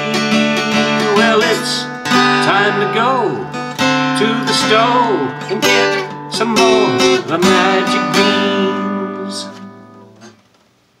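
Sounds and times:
acoustic guitar chord ringing: 0.0s - 10.4s.

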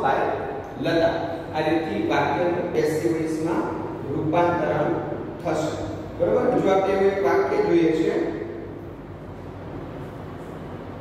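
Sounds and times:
man speaking: 0.0s - 8.6s.

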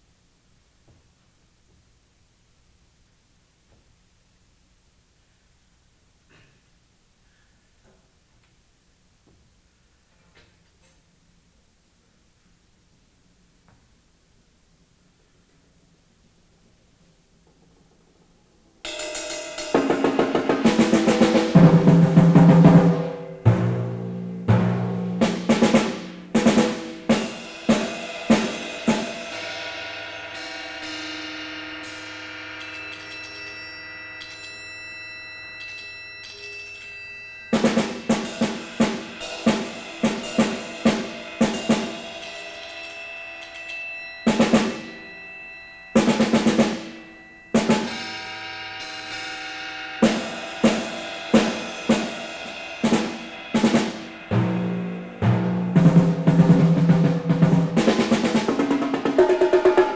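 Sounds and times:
drum strikes and rolls: 18.9s - 33.3s, 37.5s - 42.7s, 44.3s - 45.1s, 46.0s - 59.9s
long ringing tones: 25.5s - 59.9s.

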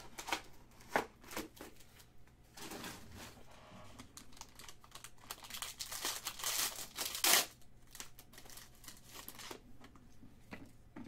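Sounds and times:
foil wrapper crinkling and ripping: 4.0s - 9.6s.

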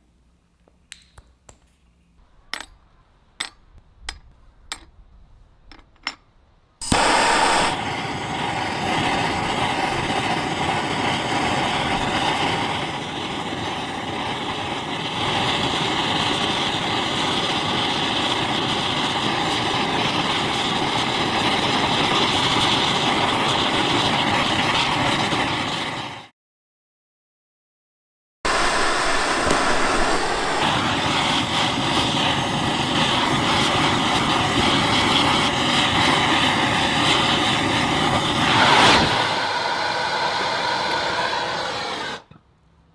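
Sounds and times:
gas torch roaring hiss: 6.8s - 26.3s, 28.5s - 42.3s.

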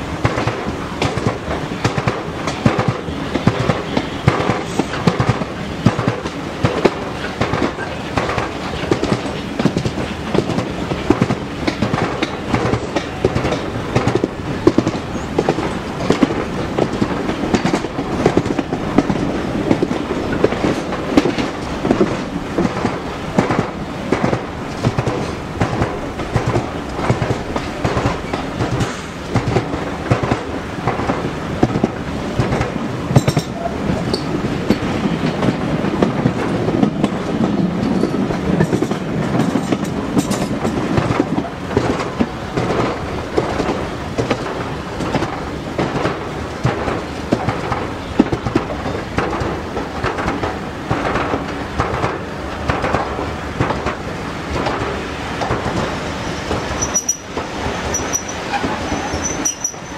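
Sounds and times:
train wheels clattering on rails: 0.0s - 59.9s.

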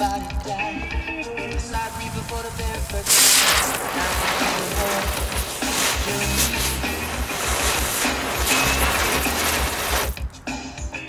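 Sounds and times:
firework burning with hiss: 1.7s - 10.6s.

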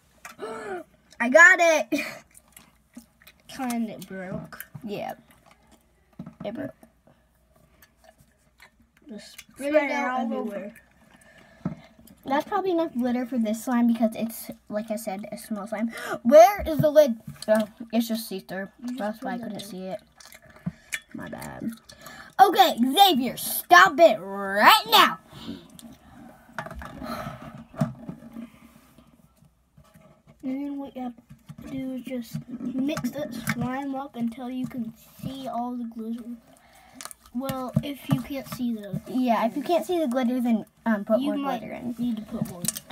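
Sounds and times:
children making vocal noises: 9.0s - 10.9s, 22.3s - 25.7s.

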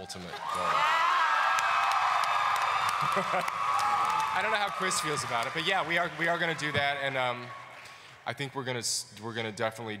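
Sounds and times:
audience cheering and screaming: 0.0s - 8.1s
clapping: 1.5s - 8.0s.

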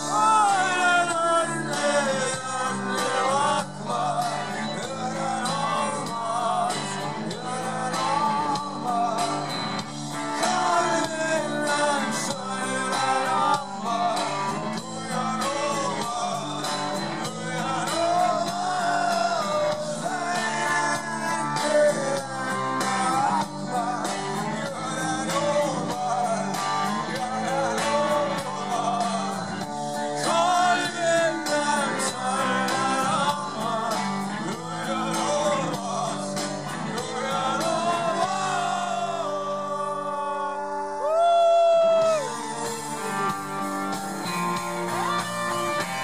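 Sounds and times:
rock band playing: 0.0s - 39.9s, 41.9s - 46.0s
electric lead guitar solo: 42.0s - 46.0s.

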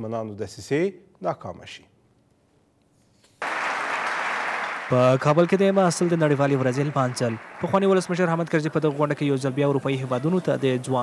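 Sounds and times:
audience clapping: 3.4s - 11.0s
man's voice: 4.9s - 11.0s.

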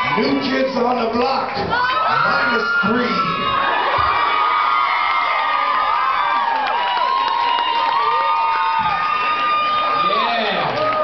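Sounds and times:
audience cheering: 0.0s - 11.0s
long high-pitched screams: 1.8s - 11.0s.

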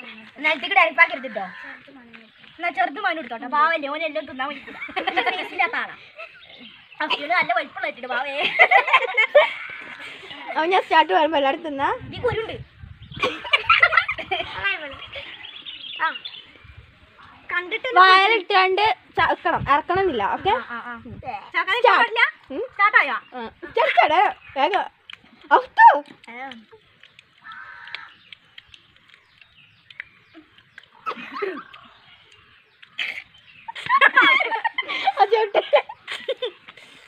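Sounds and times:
children laughing and giggling: 4.4s - 11.2s, 13.1s - 16.4s, 23.5s - 24.6s, 30.2s - 37.0s.

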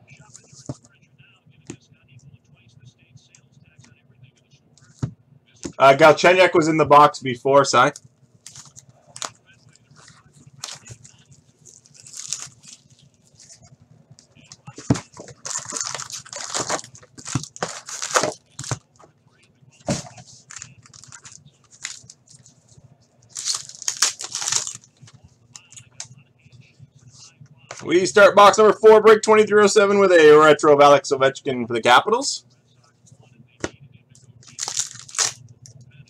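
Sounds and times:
wrapper crinkling and tearing: 11.6s - 13.5s, 15.3s - 18.7s, 20.5s - 22.5s, 23.3s - 24.9s, 34.4s - 35.4s.

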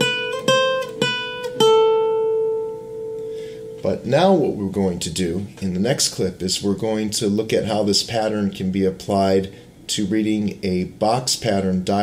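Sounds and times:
nylon-string guitar picking notes: 0.0s - 4.8s.

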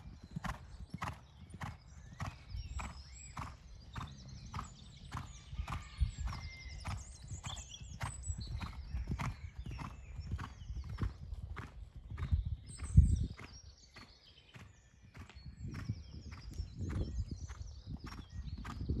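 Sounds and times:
horse hoofbeats on sand: 0.0s - 19.0s.

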